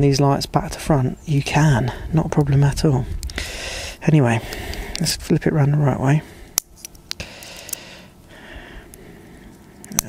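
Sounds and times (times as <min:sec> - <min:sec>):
sharp clicks: 0:03.2 - 0:03.5, 0:04.5 - 0:05.1, 0:06.6 - 0:07.9, 0:08.9 - 0:10.0.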